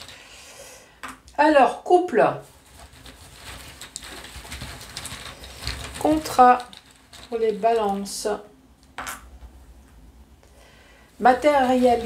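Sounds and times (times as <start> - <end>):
hand rustling in cloth bag: 2.4 - 8.2, 11.2 - 12.0.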